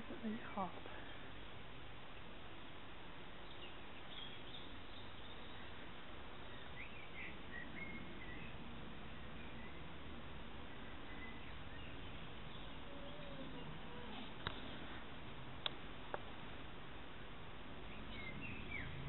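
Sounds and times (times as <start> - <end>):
outdoor background noise: 0.0 - 19.0
faint bird chirps: 3.4 - 10.0, 10.6 - 14.4, 17.8 - 19.0.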